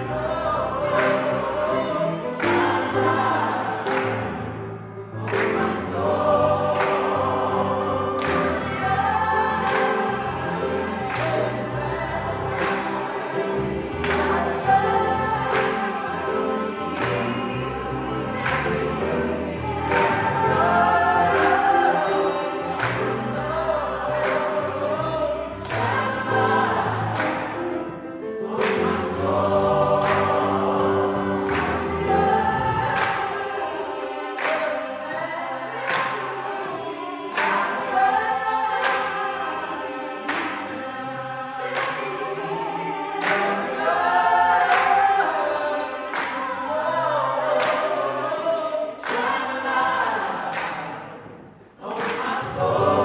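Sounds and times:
choir singing gospel song: 0.0 - 53.0
piano: 0.0 - 53.0
people clapping on the beat: 0.2 - 48.4, 49.0 - 53.0.

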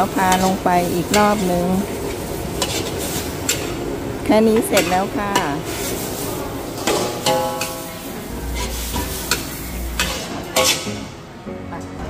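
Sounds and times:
food sizzling: 0.0 - 11.4
metal spatula scraping a wok: 0.2 - 3.8, 4.5 - 11.2.

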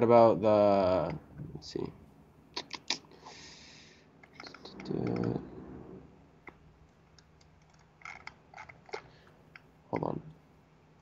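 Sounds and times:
man speaking: 4.6 - 5.6, 10.0 - 10.3.

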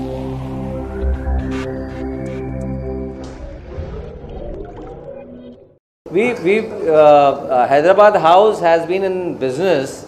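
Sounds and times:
held synth tones: 0.0 - 5.8.

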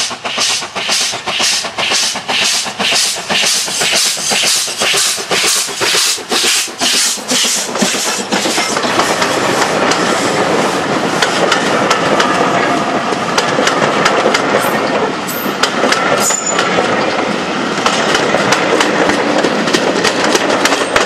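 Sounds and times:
wheels clicking over rail joints: 0.0 - 10.6, 11.2 - 21.0
train wheels rumbling: 0.0 - 21.0.

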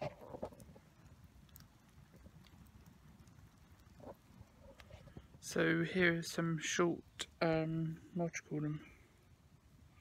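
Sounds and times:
bonfire low rumble: 0.0 - 10.0
wood fire crackles: 0.0 - 10.0.

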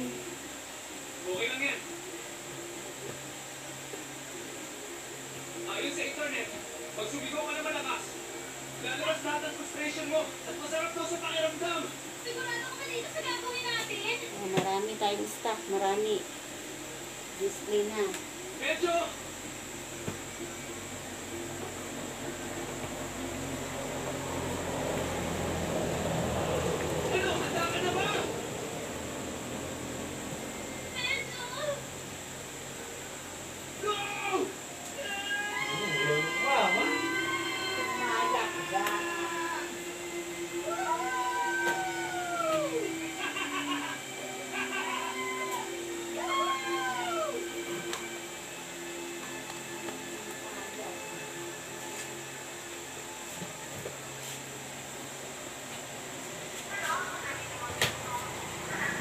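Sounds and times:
steady hum: 0.0 - 59.0
steady low hum: 8.1 - 33.9
motor vehicle: 21.4 - 30.9, 55.6 - 59.0
drawn-out animal calls: 57.1 - 59.0.

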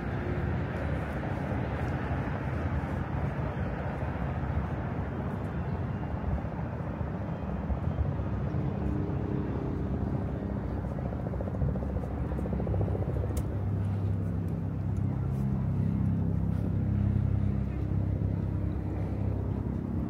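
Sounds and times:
low engine drone: 0.0 - 20.0.

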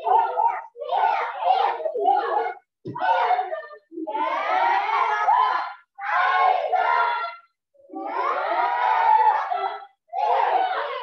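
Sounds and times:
children shouting in unison: 8.0 - 11.0.

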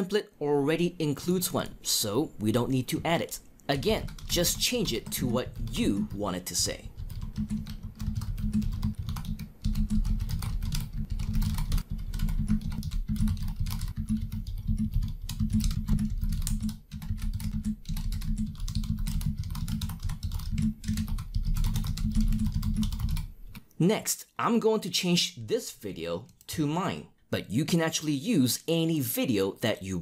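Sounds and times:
typing on computer keyboard: 3.8 - 6.2, 6.9 - 23.3.

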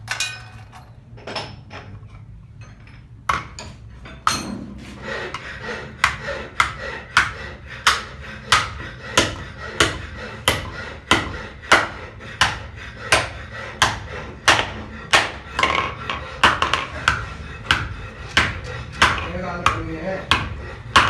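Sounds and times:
hammer striking metal with ring: 3.3 - 4.7.

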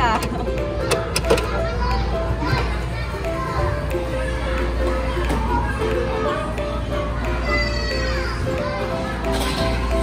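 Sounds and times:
background music: 0.0 - 10.0
young children chattering: 0.0 - 10.0.

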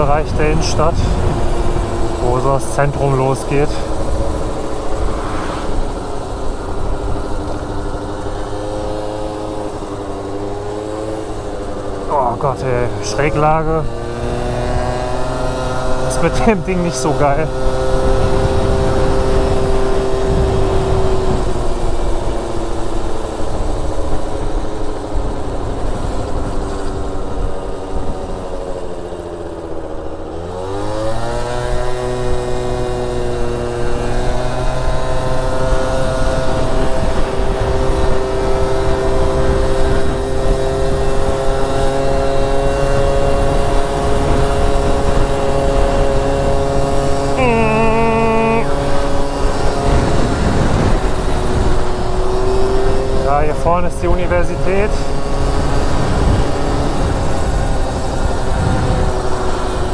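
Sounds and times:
wind rumble on microphone: 0.0 - 29.9, 30.6 - 59.9
scooter engine running: 0.0 - 59.9
short high-pitched tone: 47.4 - 48.7.

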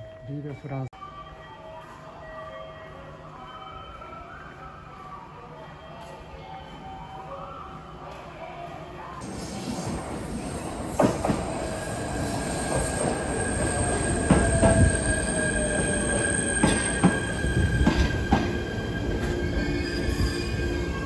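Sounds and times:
steady high squeal: 9.2 - 21.0.

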